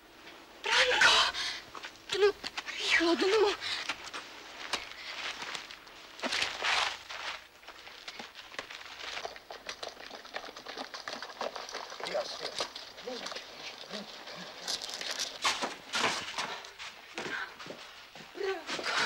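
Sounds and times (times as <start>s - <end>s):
scuffling and rustling leaves: 2.1s - 17.2s
scattered clicks and crackles: 7.7s - 15.8s.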